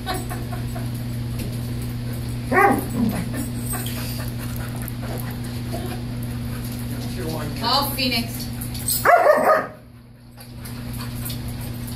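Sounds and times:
dog barking: 2.5 - 3.0, 9.0 - 9.8.

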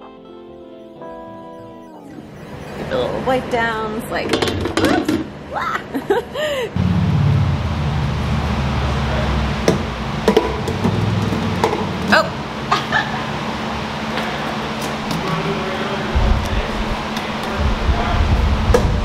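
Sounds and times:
people laughing: 5.5 - 6.7, 12.7 - 13.4.

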